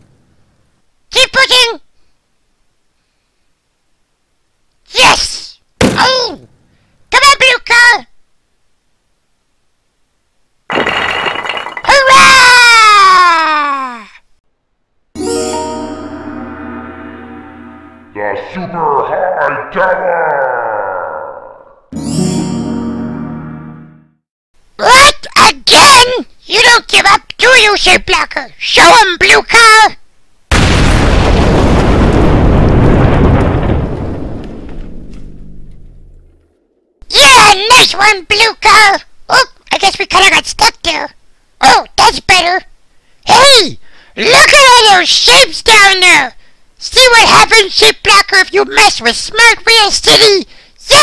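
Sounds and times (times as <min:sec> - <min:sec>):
tone sliding down in pitch: 0:15.2 - 0:18.2
cartoon crash: 0:30.5 - 0:33.9
explosion with deep rumble: 0:30.5 - 0:36.2.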